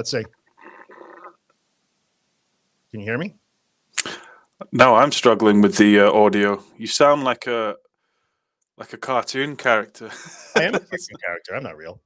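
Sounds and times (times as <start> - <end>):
man speaking: 0.0 - 0.3, 3.0 - 3.4, 4.0 - 7.8, 8.8 - 12.0
garbled voice over video call: 0.0 - 1.3, 3.0 - 3.4, 4.0 - 7.8, 8.8 - 12.0.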